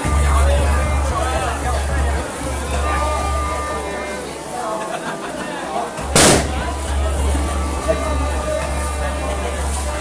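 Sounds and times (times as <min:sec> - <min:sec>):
crowd voices: 0:00.0 - 0:10.0
loud sharp bang: 0:06.2 - 0:06.8.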